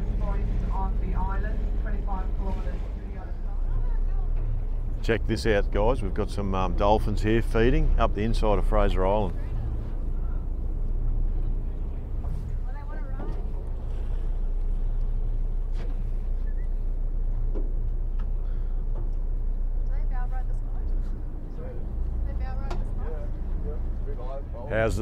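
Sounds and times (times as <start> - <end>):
boat engine hum: 0.0 - 25.0
wind and water noise: 0.0 - 25.0.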